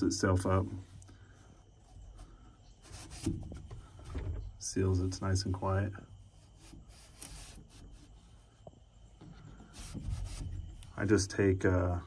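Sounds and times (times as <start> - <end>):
panel rubbing in channel: 2.8 - 4.9, 9.6 - 11.0.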